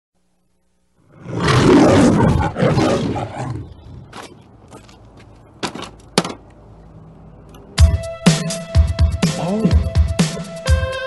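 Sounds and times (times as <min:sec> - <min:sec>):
lion roaring: 0:01.0 - 0:04.4.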